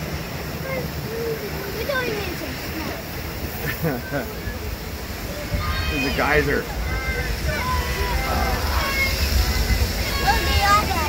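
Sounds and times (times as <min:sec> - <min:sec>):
faint voices: 0:00.0 - 0:11.0
rushing water and spray: 0:00.0 - 0:11.0.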